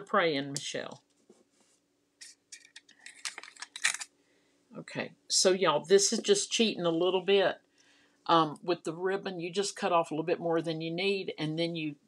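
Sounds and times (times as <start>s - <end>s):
craft supplies clicking and rustling: 2.5s - 4.1s.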